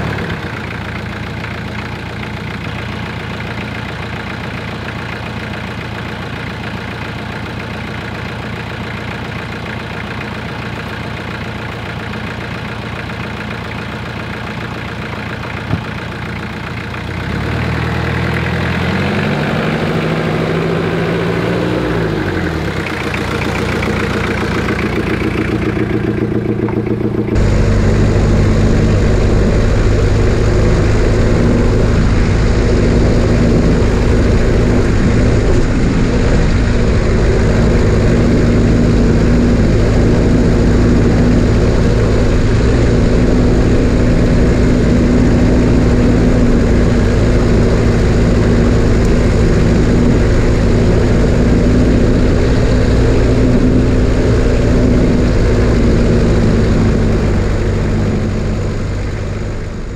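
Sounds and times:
diesel engine idling: 0.0s - 59.9s
vehicle drone from underneath: 17.2s - 59.9s.

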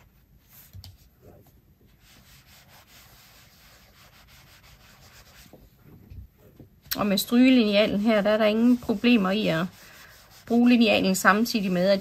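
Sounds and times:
iron rubbing on fabric: 1.3s - 5.8s, 7.2s - 12.0s.

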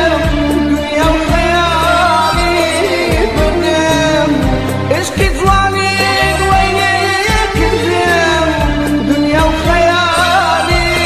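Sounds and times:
bass: 0.0s - 11.0s
man singing long wavering notes: 0.0s - 11.0s
steady drum beat: 0.0s - 11.0s.

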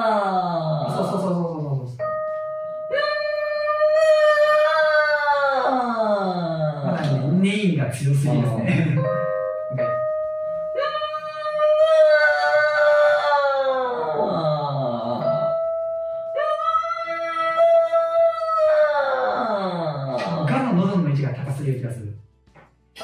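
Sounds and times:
singer practising vocal exercise: 0.0s - 2.1s, 10.8s - 15.6s, 16.3s - 20.8s.

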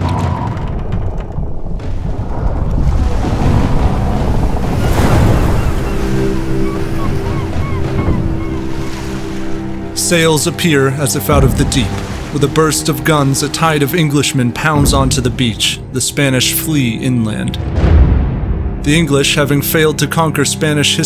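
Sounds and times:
sea surf: 1.8s - 17.0s
sustained music tones: 2.3s - 21.0s.

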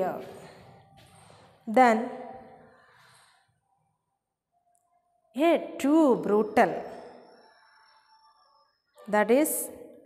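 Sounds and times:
woman speaking: 0.0s - 0.4s, 1.7s - 2.3s, 5.4s - 7.0s, 9.1s - 9.8s
soft breath: 0.2s - 1.7s, 2.3s - 3.9s.

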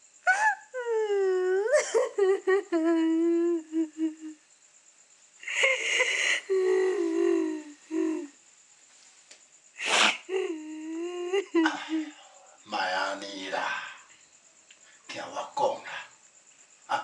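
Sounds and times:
woman sobbing and wailing: 0.2s - 4.4s, 5.4s - 8.3s, 10.1s - 12.2s
noisy gasping breath: 5.4s - 8.3s.

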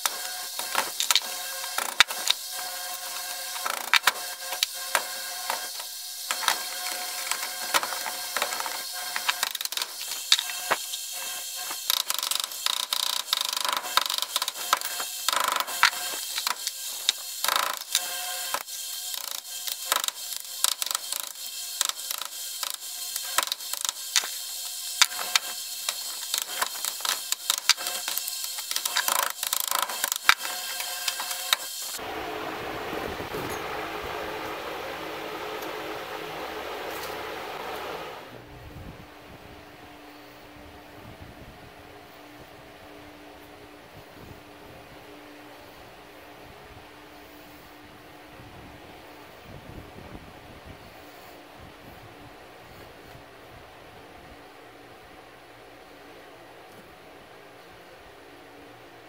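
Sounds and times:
steady background noise: 0.0s - 59.0s.

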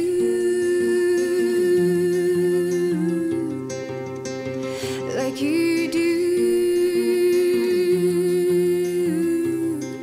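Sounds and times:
classical guitar: 0.0s - 10.0s.

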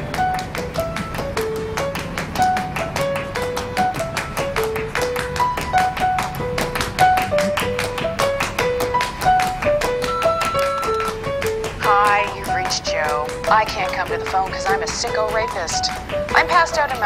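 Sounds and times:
quick tapping beat: 0.0s - 17.0s.

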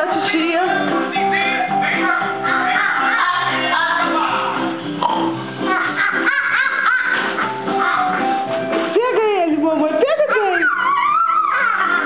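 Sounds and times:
toddler babbling and squealing: 10.3s - 12.0s.

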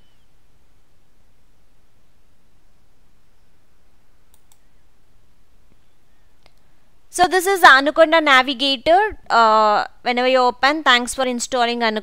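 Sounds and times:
faint low hum: 0.0s - 12.0s
computer mouse clicks: 4.3s - 4.7s.

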